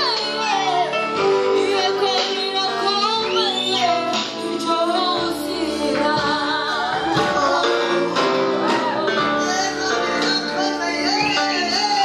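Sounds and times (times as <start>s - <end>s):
high voices singing with vibrato: 0.0s - 12.0s.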